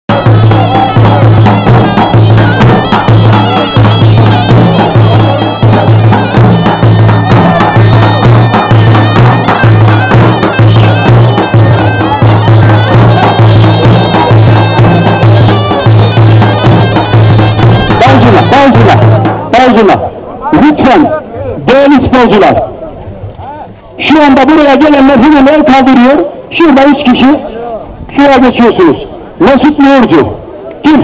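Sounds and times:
big drum beating: 0:00.1 - 0:21.1
reed pipe melody: 0:00.1 - 0:31.0.

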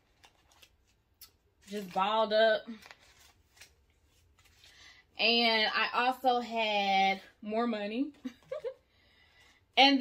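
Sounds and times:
paper money rustling: 0:00.0 - 0:04.9.

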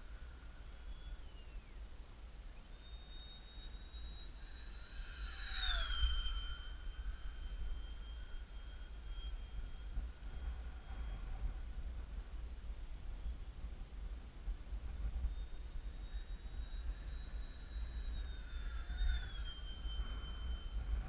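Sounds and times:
model jet fan whining past: 0:00.0 - 0:21.0
wind rumble on microphone: 0:00.0 - 0:21.0.

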